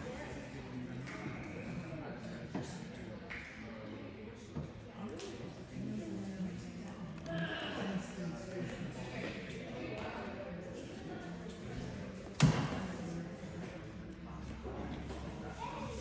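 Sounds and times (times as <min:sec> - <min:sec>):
background voices chatter: 0:00.0 - 0:16.0.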